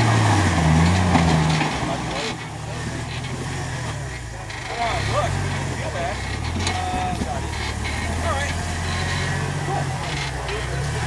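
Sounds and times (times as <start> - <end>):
engine running at low revs: 0.0 - 11.0.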